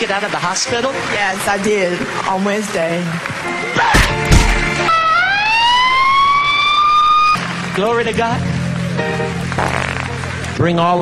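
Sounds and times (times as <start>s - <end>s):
ambulance siren wailing: 3.4s - 7.6s.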